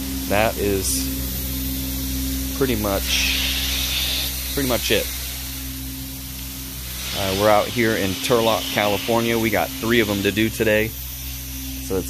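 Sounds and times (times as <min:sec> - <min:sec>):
carpet extractor humming and hissing: 0:00.0 - 0:12.0.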